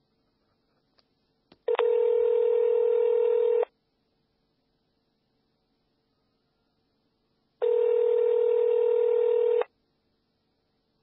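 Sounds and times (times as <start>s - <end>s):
telephone ringback tone: 1.7s - 3.7s, 7.6s - 9.7s.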